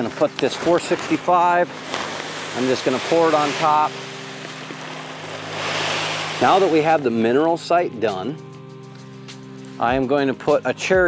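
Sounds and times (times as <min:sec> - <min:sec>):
granules pouring onto soil: 0:00.0 - 0:07.2.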